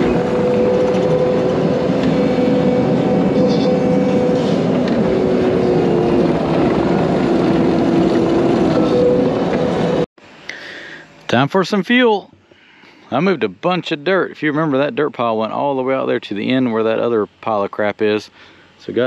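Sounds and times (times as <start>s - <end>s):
loud diesel engine and running gear: 0.0s - 10.1s
whining tones sliding in pitch: 0.0s - 10.1s.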